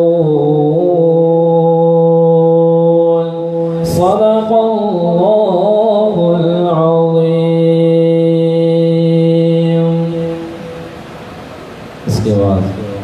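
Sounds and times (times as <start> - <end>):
man chanting melodically: 0.0 - 10.9, 12.0 - 13.0.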